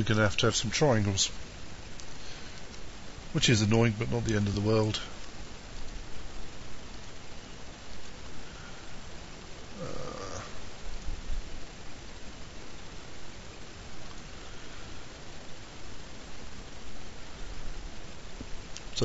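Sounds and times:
microphone hiss: 0:00.0 - 0:19.0.

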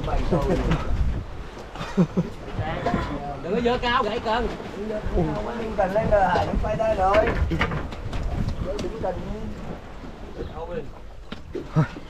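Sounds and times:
people talking and laughing: 0:00.0 - 0:12.0
wind and sea rumble: 0:00.0 - 0:12.0.

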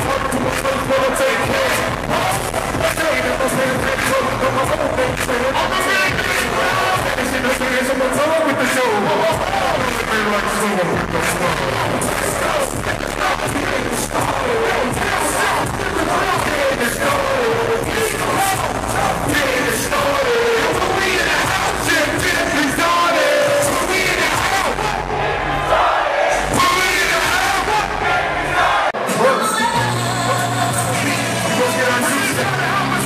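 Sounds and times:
crowd noise: 0:00.0 - 0:33.0
heavy beat: 0:00.0 - 0:33.0
rappers shouting verses: 0:00.0 - 0:33.0.

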